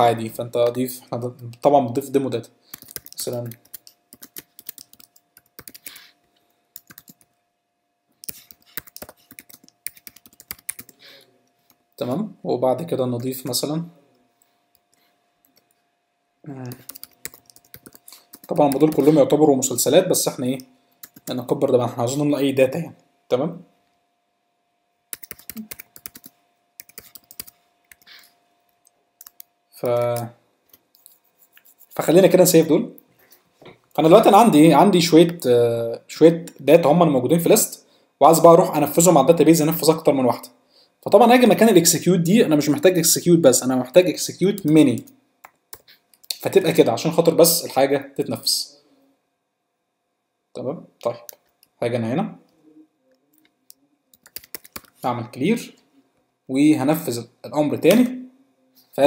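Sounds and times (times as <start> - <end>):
faint steady hum: 0.0 - 59.0
typing on keyboard: 2.7 - 6.0, 6.8 - 7.3, 8.2 - 11.0, 16.7 - 19.2, 21.0 - 21.4, 25.1 - 28.1, 54.1 - 55.0.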